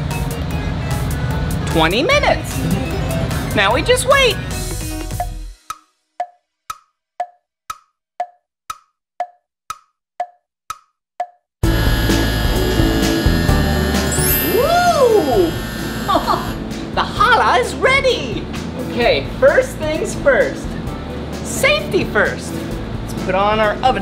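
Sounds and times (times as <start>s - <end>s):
loud music: 0.0s - 5.6s, 11.6s - 18.8s
clock ticking: 5.7s - 11.4s.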